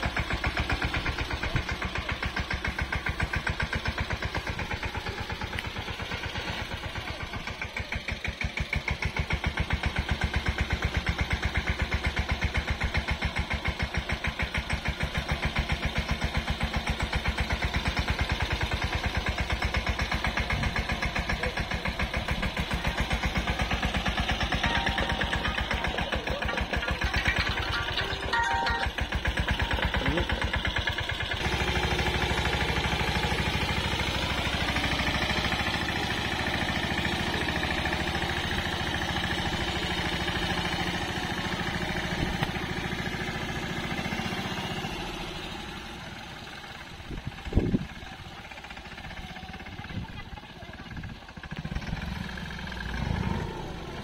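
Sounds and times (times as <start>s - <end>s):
tractor diesel engine chugging: 0.0s - 54.0s.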